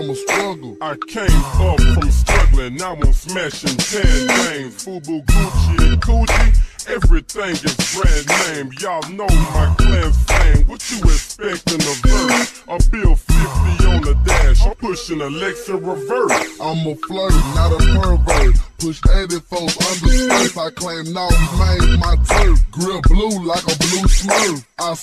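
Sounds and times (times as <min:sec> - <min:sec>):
pitched-down rap vocals: 0:00.0 - 0:25.0
heavy bass beat: 0:00.3 - 0:15.3, 0:16.3 - 0:25.0.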